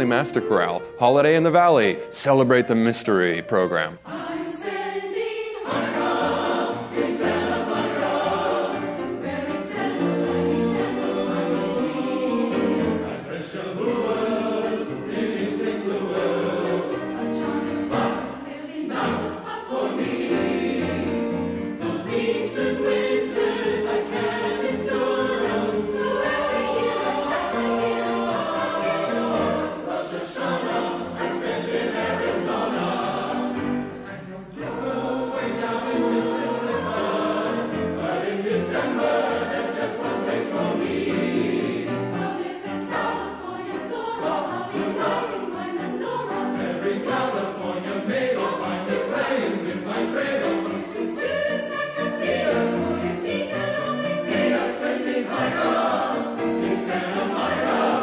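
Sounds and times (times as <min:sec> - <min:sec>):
mixed choir singing chords: 0:00.0 - 0:58.0.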